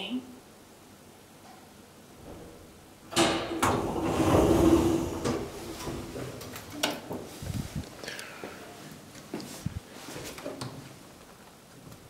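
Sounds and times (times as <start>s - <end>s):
elevator doors sliding open: 2.2s - 7.7s
door motor humming: 3.1s - 6.7s.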